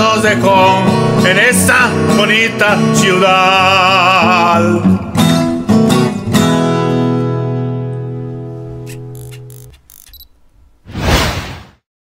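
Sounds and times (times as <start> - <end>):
whoosh sound effect: 10.9 - 11.8.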